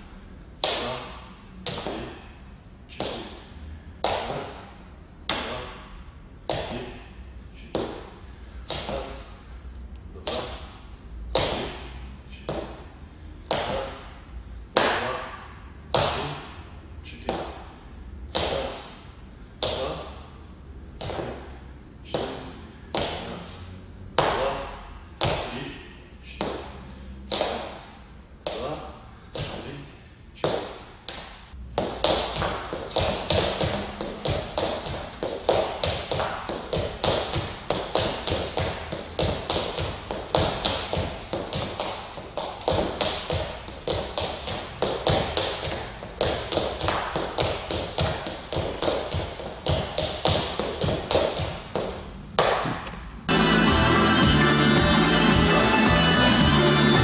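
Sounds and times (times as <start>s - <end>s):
shoes tapping on wooden floor: 30.4s - 53.0s.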